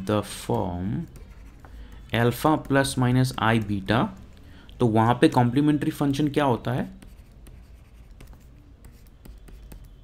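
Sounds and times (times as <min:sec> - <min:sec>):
stylus scratching on tablet: 0:00.0 - 0:04.4, 0:06.0 - 0:10.0.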